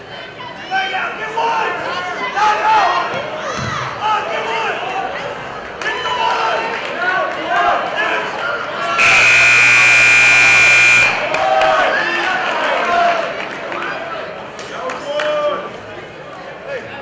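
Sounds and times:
spectators shouting: 8.9 - 12.1
scoreboard buzzer tone: 9.0 - 11.3.

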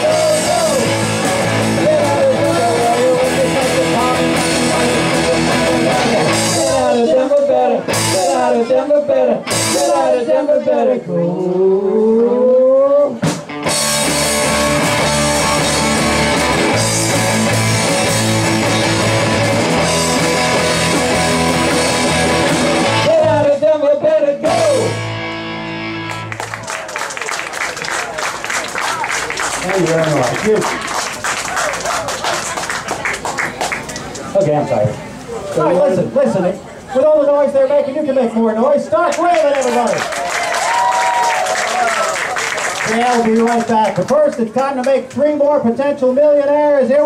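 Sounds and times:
live rock band: 0.0 - 8.7, 9.4 - 10.2, 13.1 - 23.6, 24.4 - 26.6
audience applause: 26.1 - 34.2, 39.1 - 44.5.

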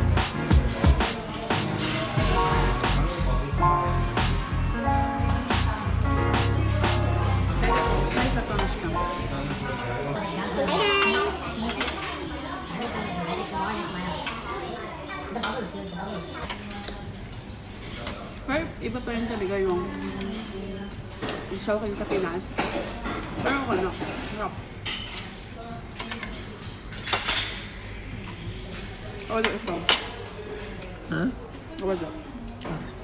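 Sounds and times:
cutlery clinking on a plate: 22.5 - 25.4, 26.0 - 27.8.

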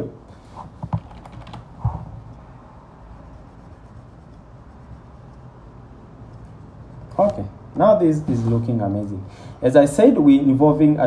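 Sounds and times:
computer keyboard and mouse clicks: 0.8 - 1.7.

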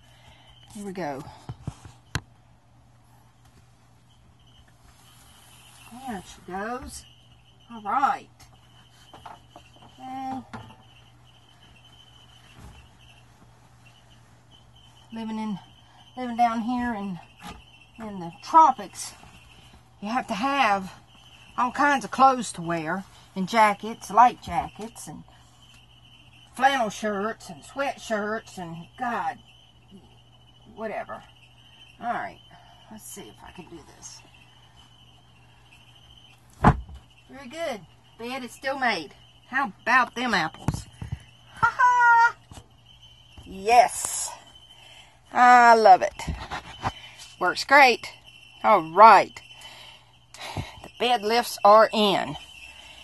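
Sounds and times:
cricket trilling: 0.0 - 53.0
low steady hum: 0.0 - 53.0
heavy thump of bed platform: 36.6 - 37.0.

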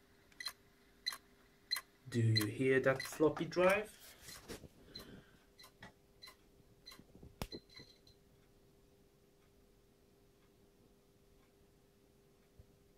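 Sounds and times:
faint steady hum: 0.0 - 12.9
hard drive ticking clicks: 0.2 - 3.8, 4.9 - 9.6.

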